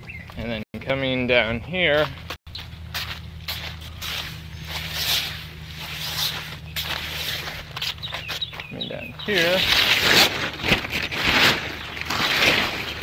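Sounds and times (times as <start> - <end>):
steady low hum: 0.1 - 13.0
footsteps on gravel: 1.8 - 13.0.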